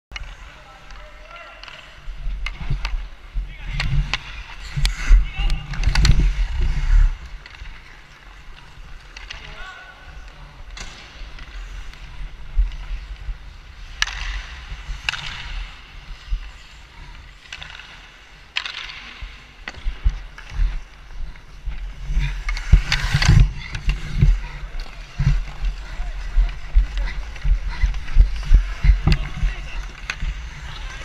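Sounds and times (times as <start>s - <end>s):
skate blades scraping ice: 0.2s - 31.0s
low rumble of movement: 2.1s - 7.9s, 19.2s - 31.0s.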